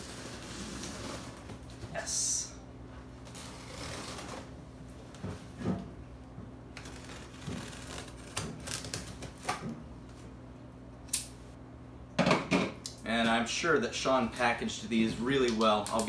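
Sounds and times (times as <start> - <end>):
faint steady hum: 0.0 - 16.0
scissors cutting packing tape: 6.8 - 9.6.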